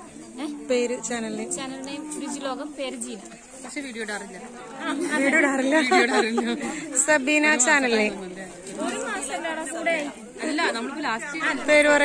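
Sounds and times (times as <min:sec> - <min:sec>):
background voices chattering: 0:00.0 - 0:12.0.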